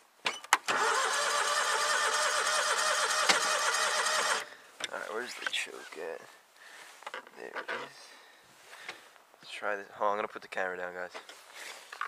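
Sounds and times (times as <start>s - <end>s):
engine cranking on starter: 0.6s - 4.5s.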